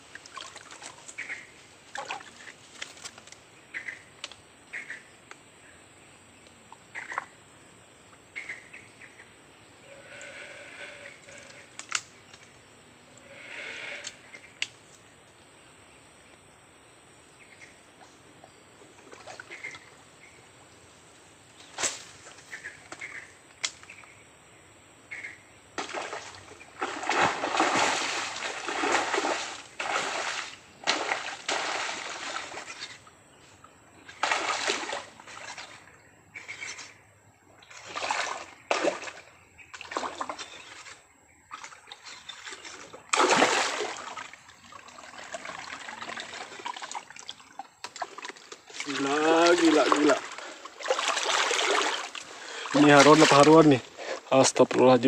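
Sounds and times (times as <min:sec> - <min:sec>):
fish splashing in water: 0:25.8 - 0:32.9, 0:34.1 - 0:35.8, 0:41.5 - 0:53.7.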